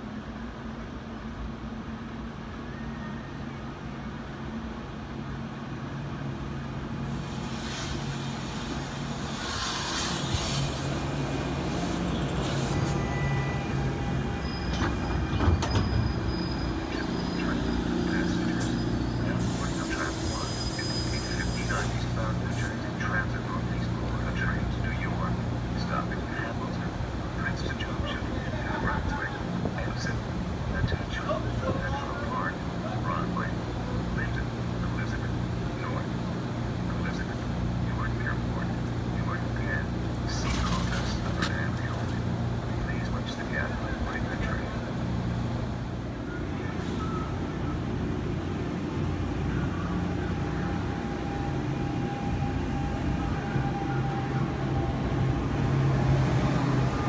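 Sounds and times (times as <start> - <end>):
train humming at platform: 0.0 - 57.0
high brake squeal: 2.6 - 3.6, 9.3 - 10.8, 11.8 - 22.8
faint voices: 16.8 - 36.2, 36.8 - 45.0.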